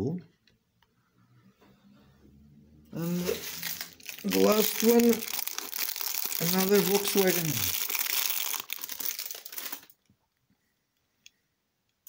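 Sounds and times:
plastic bag crinkling: 3.0s - 9.9s.

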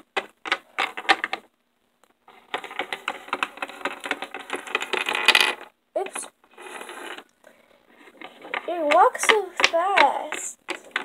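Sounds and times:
plastic figurines clicking on wood: 0.0s - 1.5s, 2.5s - 6.3s, 8.1s - 11.0s.

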